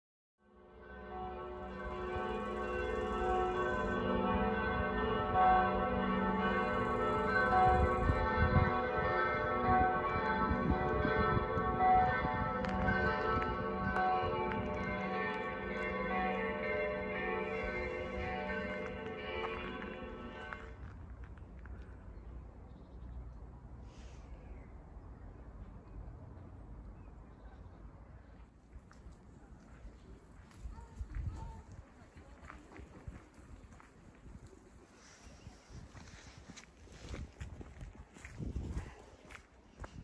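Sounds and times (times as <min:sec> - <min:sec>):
church bells pealing: 0:00.5 - 0:21.0.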